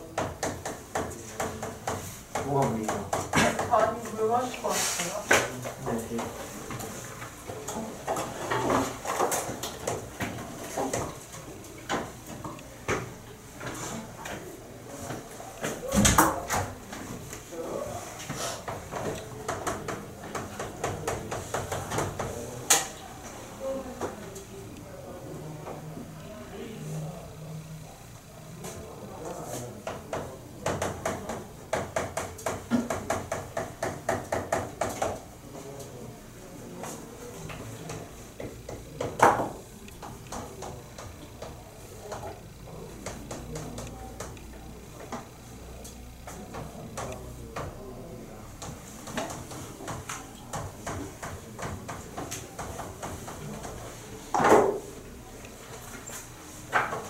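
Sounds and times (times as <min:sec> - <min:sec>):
chalk tapping and scraping: 0:00.0 - 0:11.2, 0:18.0 - 0:22.5, 0:48.6 - 0:55.0
chalk scraping on chalkboard: 0:04.6 - 0:05.2.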